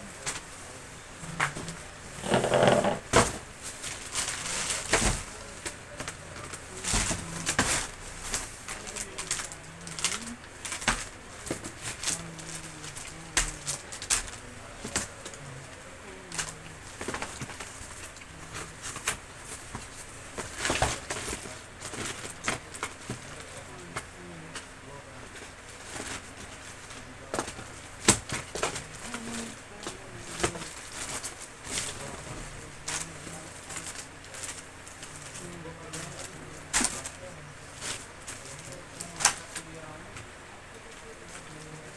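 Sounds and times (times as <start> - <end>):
clicks and knocks of handled items: 1.3 - 41.9.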